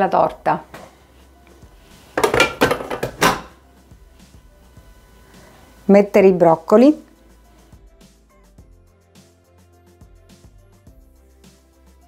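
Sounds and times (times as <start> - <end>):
metal mixing bowl clattering: 2.2 - 3.5.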